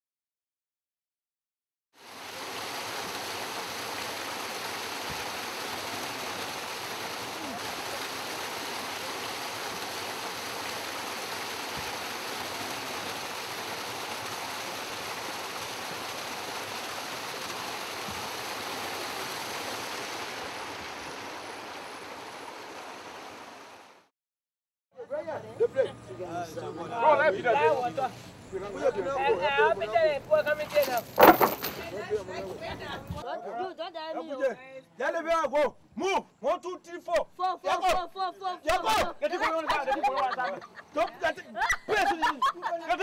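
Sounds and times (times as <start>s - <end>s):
river water rushing: 2.0s - 24.0s.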